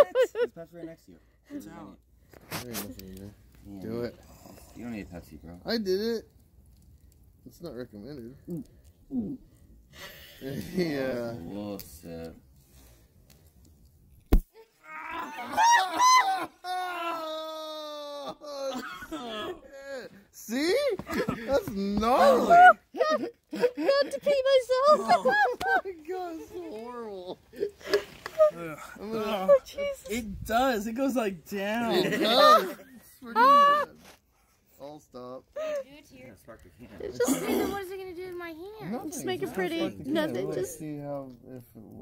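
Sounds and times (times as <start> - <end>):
person laughing: 0.0 - 0.4, 18.0 - 19.6, 21.0 - 24.2, 24.8 - 25.9, 31.9 - 33.9
person crying out: 14.6 - 19.8, 22.1 - 23.3, 33.4 - 33.9.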